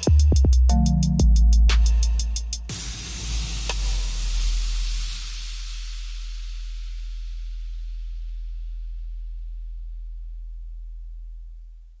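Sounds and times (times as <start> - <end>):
deep steady bass tone: 0.0 - 12.0
faint hiss: 2.7 - 8.4.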